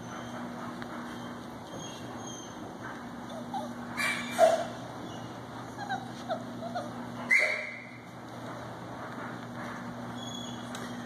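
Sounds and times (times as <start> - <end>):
puppies yipping and whimpering: 0.0 - 8.0, 10.1 - 11.0
puppy sharp yelps: 3.3 - 8.0.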